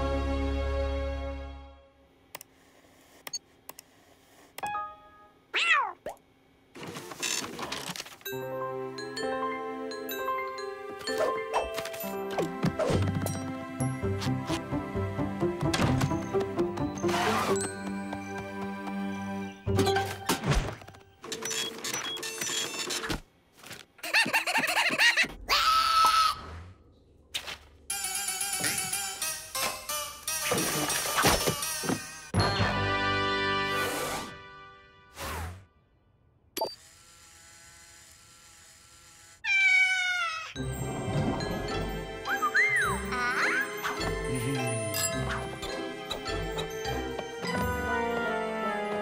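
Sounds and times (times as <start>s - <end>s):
cartoon character shrill cry: 5.5s - 6.0s, 39.4s - 40.6s
cartoon cat vocal sound: 5.5s - 6.2s
cartoon sound effects: 5.5s - 6.2s, 42.2s - 44.1s.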